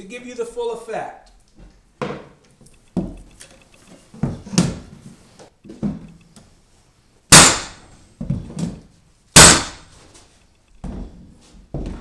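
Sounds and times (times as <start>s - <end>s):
flooring nailer firing bang: 7.3s - 7.9s, 9.4s - 9.9s.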